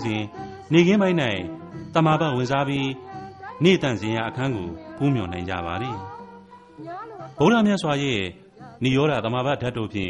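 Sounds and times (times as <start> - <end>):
faint background music: 0.0 - 10.0
person sing-song voice: 0.0 - 10.0.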